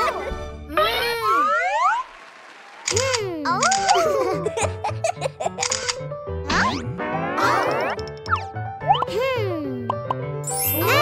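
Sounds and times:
children's background music: 0:06.4 - 0:11.0.

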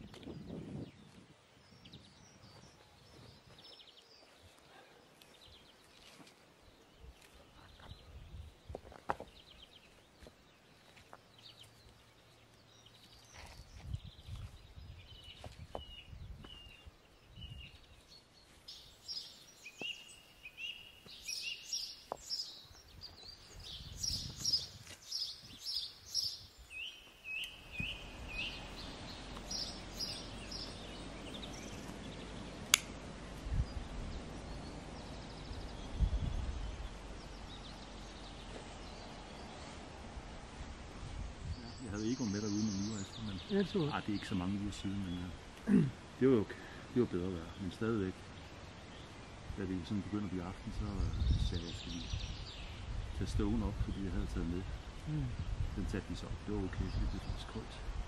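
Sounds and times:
songbird chirping: 0:00.0 - 0:58.0
outdoor hiss: 0:16.8 - 0:58.0
sharp click: 0:32.7 - 0:33.0.

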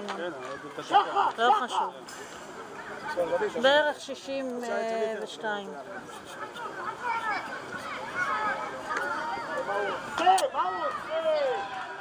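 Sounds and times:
people shouting and calling: 0:06.2 - 0:12.0.

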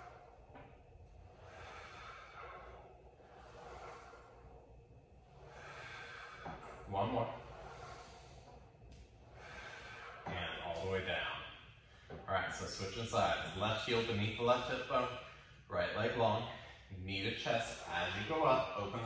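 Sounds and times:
man breathing hissing breaths: 0:00.0 - 0:10.4
voiced exhale: 0:01.3 - 0:04.6, 0:05.4 - 0:10.3.

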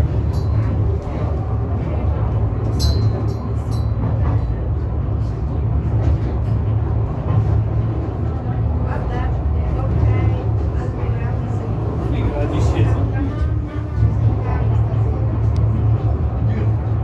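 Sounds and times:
funicular car rumbling: 0:00.0 - 0:17.0.

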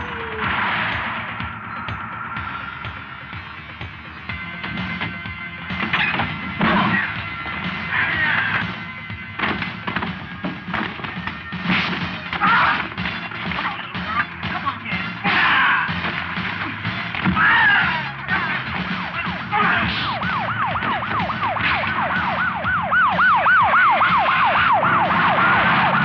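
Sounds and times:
shouts and grunts: 0:00.0 - 0:00.7, 0:07.9 - 0:08.6, 0:12.4 - 0:12.9, 0:14.0 - 0:16.0, 0:16.6 - 0:20.1
hit and thud sound effects: 0:00.0 - 0:03.1, 0:04.6 - 0:23.2, 0:23.9 - 0:26.0
background music: 0:00.0 - 0:26.0.

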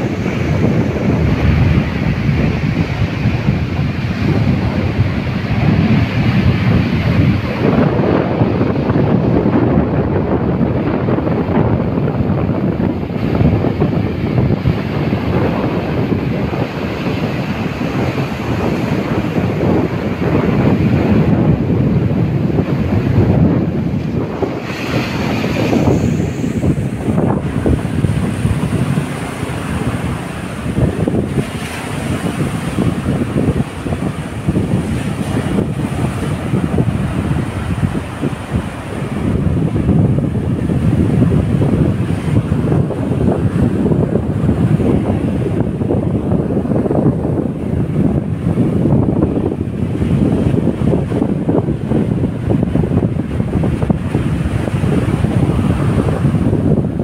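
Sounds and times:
waves breaking on beach: 0:00.0 - 0:57.0
wind buffeting microphone: 0:00.0 - 0:57.0.

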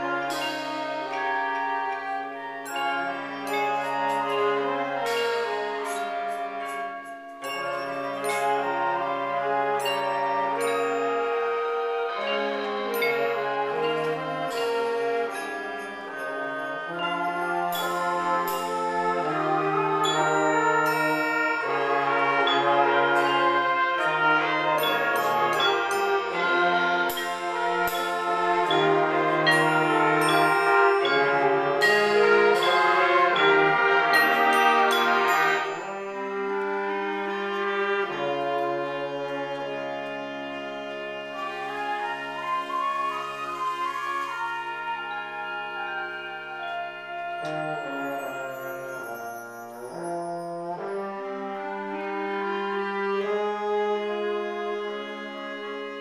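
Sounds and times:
high ringing percussion strikes: 0:00.0 - 0:37.2
woodwinds and brass chords: 0:00.0 - 0:56.0.

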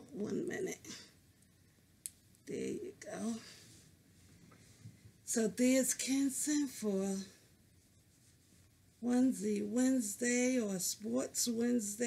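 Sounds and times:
person speaking: 0:02.5 - 0:03.6
fabric rustling: 0:07.6 - 0:09.2.

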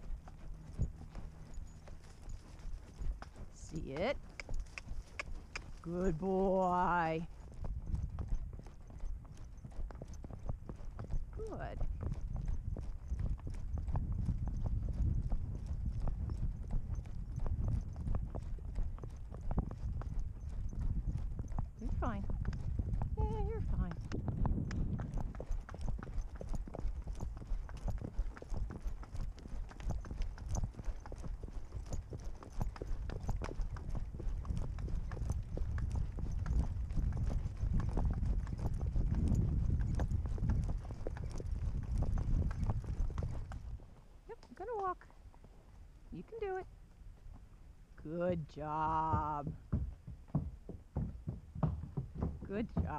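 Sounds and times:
horse hoofbeats on dirt: 0:00.0 - 0:52.9.

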